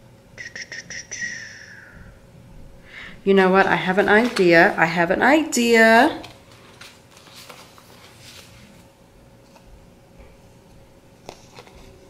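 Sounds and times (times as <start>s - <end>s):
paper crackling: 3.6s - 5.2s, 6.0s - 9.7s.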